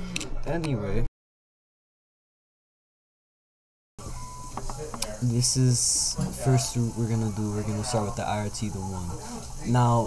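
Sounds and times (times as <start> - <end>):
beep-like tone: 4.0 - 4.6
recording hiss: 4.0 - 10.0
faint voices: 4.4 - 10.0.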